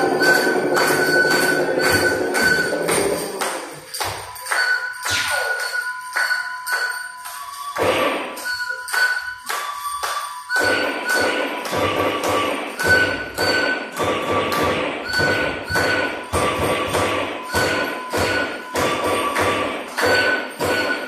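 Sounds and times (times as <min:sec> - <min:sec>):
electronic music thudding pulse: 0:00.0 - 0:04.2, 0:10.6 - 0:21.0
high pitched pings: 0:00.0 - 0:21.0.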